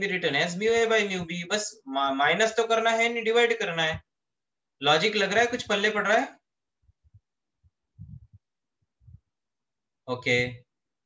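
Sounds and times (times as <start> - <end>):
faint low thumps: 7.9 - 9.3.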